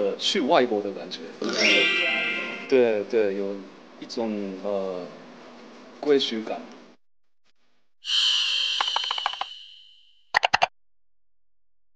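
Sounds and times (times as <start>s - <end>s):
shimmering swoosh: 1.5s - 3.0s
high ringing tone: 1.5s - 3.1s, 8.0s - 10.3s.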